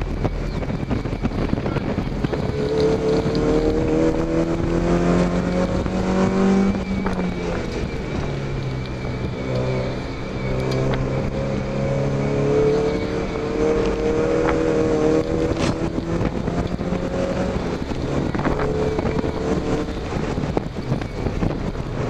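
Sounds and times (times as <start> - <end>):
car engine accelerating hard: 0.0 - 22.0.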